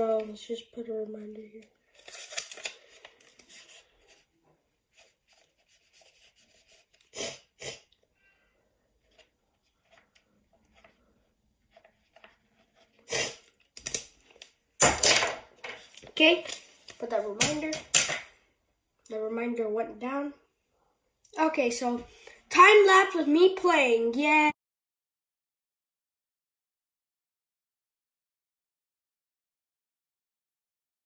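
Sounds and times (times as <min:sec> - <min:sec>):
paper rustling: 0:01.7 - 0:07.1, 0:09.0 - 0:18.2
pen scratching on paper: 0:04.9 - 0:07.8.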